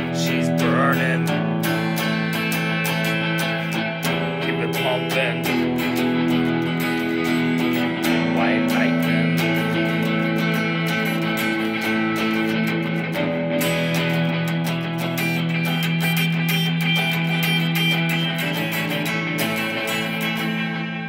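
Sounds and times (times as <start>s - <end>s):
electric guitar playing: 0.0s - 21.0s.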